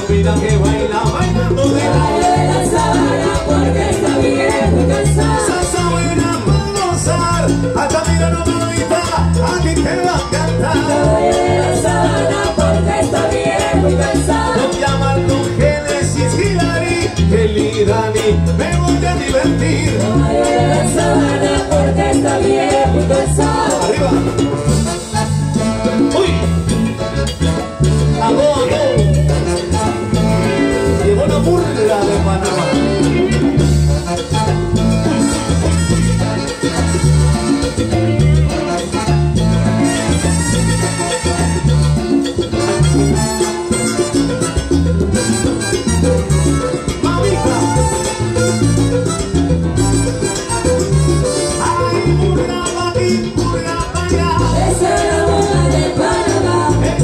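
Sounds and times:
salsa band playing: 0.0 - 57.0.

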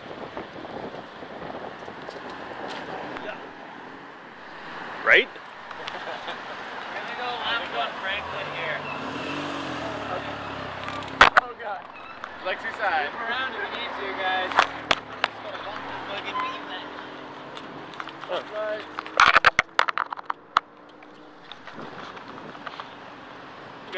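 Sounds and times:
wind noise: 0.0 - 3.6, 21.2 - 22.8
street noise: 0.0 - 23.9.

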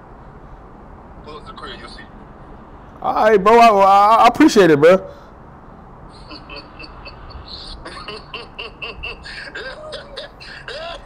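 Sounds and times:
man laughing through phone speaker: 6.1 - 11.0.

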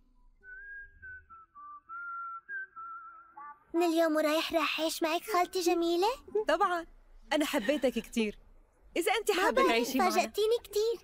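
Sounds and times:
slow whistle-like melody: 0.0 - 3.6.

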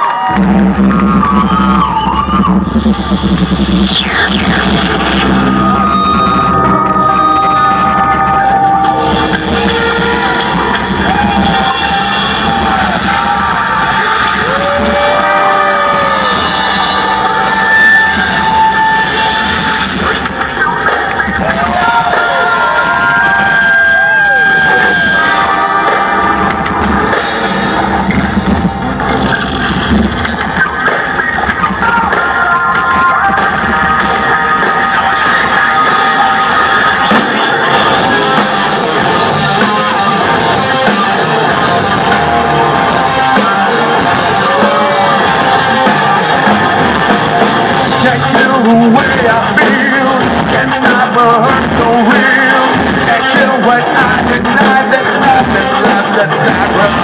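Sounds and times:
crowd noise: 0.0 - 57.0
live rock band playing: 0.0 - 57.0.

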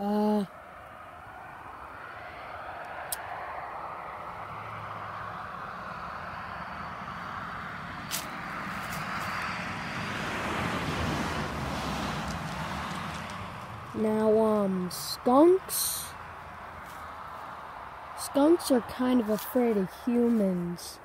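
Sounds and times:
distant vehicle passing: 0.0 - 21.0.

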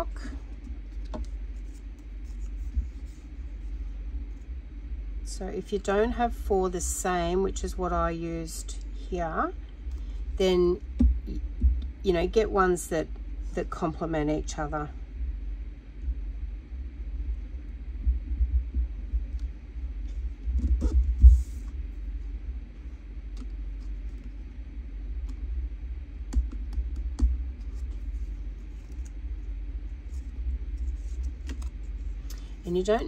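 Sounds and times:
low rumble: 15.0 - 33.0.

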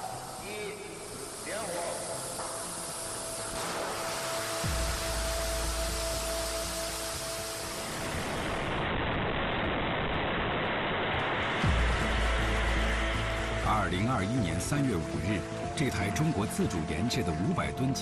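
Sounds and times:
rocket engine rushing noise: 0.0 - 15.6
music: 0.0 - 18.0.

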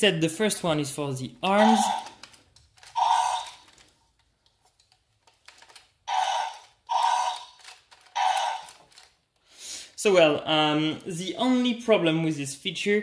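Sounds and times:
plastic toy gears clicking: 1.7 - 4.0, 4.8 - 9.2.

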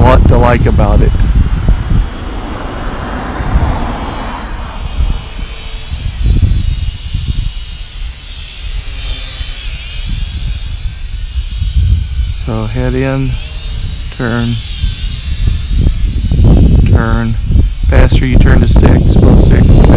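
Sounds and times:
quadcopter propellers buzzing: 0.0 - 19.9
wind on microphone: 0.0 - 19.9.

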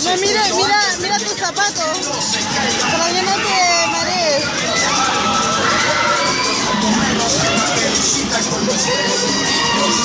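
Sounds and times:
riders screaming: 3.7 - 8.0, 8.6 - 10.0.

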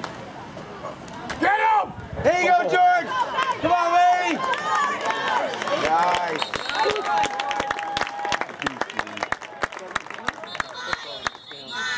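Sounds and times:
outdoor crowd noise: 0.0 - 11.9
spectators yelling: 1.4 - 8.6, 10.4 - 11.9.

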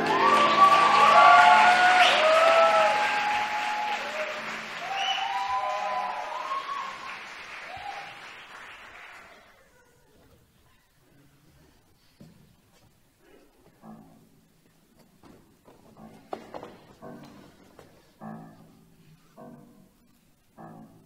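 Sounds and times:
audience applauding: 0.0 - 9.7.

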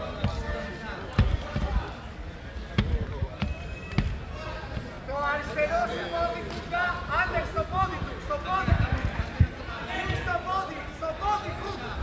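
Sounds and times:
voices in background: 0.0 - 12.0.

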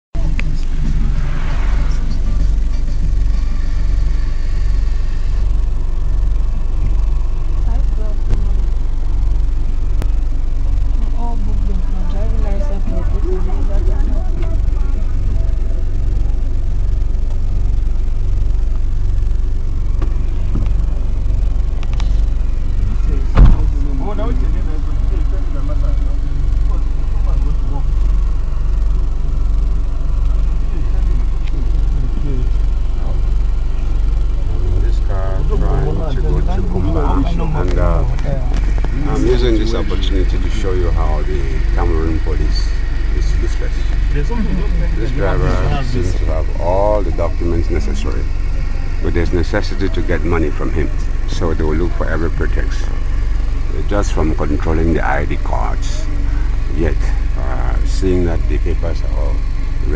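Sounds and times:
bus engine idling: 0.2 - 59.9
indistinct voices: 0.2 - 59.9
sharp knock: 23.3 - 23.7.

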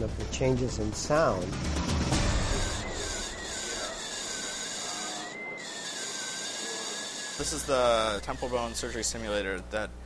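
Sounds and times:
bone drill whine: 2.2 - 9.4.

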